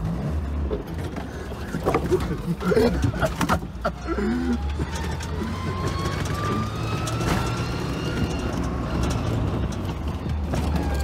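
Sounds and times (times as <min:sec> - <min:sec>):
thin drivetrain whine: 0:00.0 - 0:11.0
vehicle engine rumble: 0:00.0 - 0:11.0
body ticks and rattles: 0:00.8 - 0:11.0.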